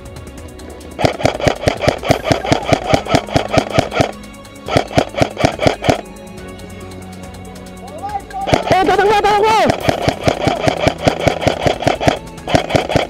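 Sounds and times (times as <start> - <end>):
background music: 0.0 - 13.0
airsoft rifle shots cracking: 0.9 - 6.1, 8.4 - 13.0.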